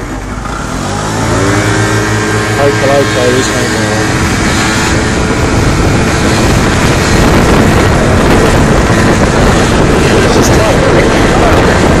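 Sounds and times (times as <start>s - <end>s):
scooter engine running: 0.0s - 12.0s
wind rushing over microphone: 0.0s - 12.0s.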